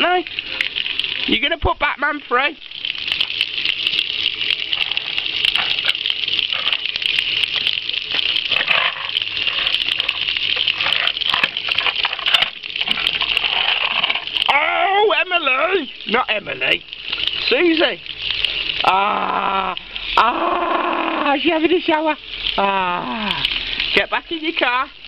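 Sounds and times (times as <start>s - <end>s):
water spraying on paving: 0.0s - 24.9s.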